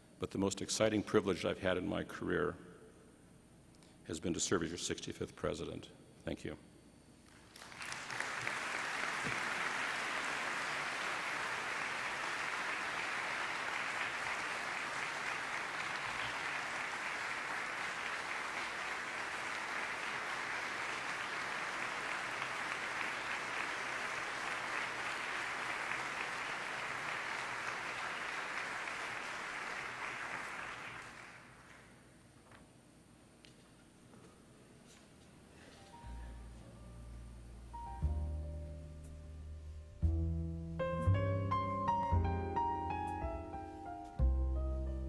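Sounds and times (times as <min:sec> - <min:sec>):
audience applauding: 0:07.3 - 0:32.0.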